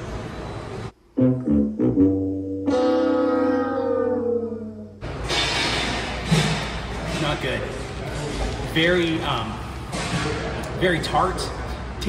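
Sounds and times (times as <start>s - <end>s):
low held music notes: 1.1s - 5.0s.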